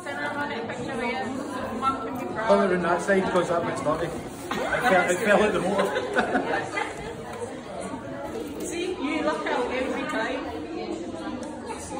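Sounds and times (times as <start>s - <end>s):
people chattering: 0.0s - 11.9s.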